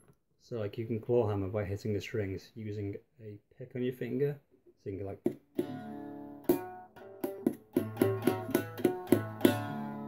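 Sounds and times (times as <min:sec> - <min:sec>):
plucked string instrument notes: 0:05.5 - 0:10.0.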